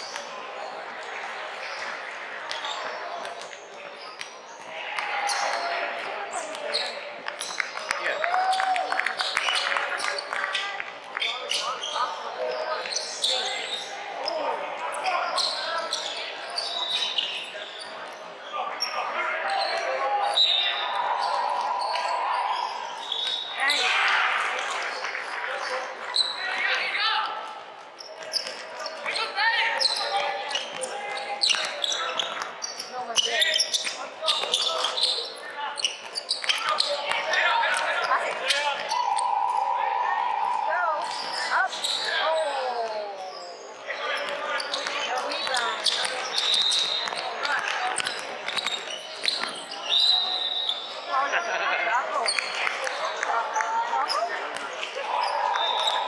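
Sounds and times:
sneakers squeaking: 1.5s - 8.2s, 9.1s - 56.0s
people shouting in hall: 19.3s - 24.6s, 38.6s - 43.4s.

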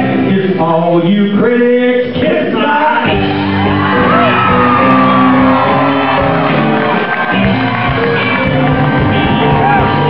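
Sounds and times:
blues-rock band playing: 2.1s - 10.0s.

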